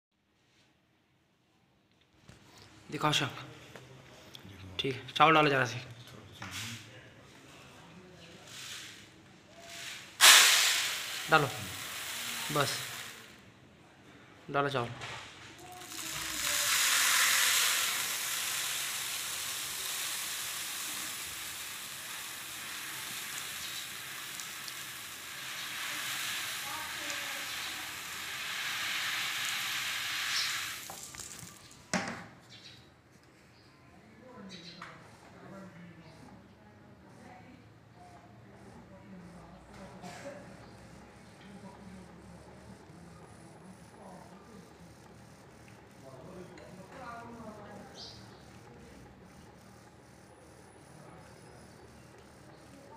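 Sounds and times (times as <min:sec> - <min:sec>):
faint distant voices murmuring: 0:02.4 - 0:10.2, 0:11.4 - 0:28.7, 0:31.0 - 0:52.9
rice grains pouring into basin: 0:10.2 - 0:13.3, 0:15.8 - 0:31.4.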